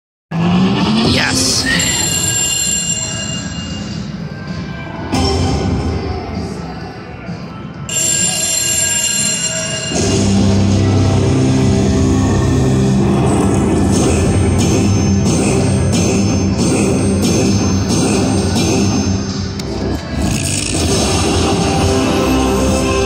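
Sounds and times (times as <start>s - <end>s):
slot machine game music: 0.9s - 4.2s, 7.9s - 19.4s.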